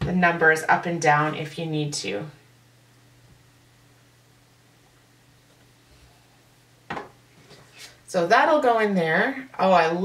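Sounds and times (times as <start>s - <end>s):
soft rustles: 7.3s - 8.1s.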